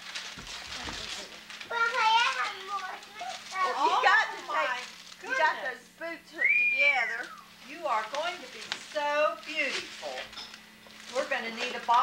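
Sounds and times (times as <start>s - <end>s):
rustling handling noise: 0.0s - 5.8s, 6.4s - 12.0s
child exclaiming excitedly: 1.7s - 3.9s.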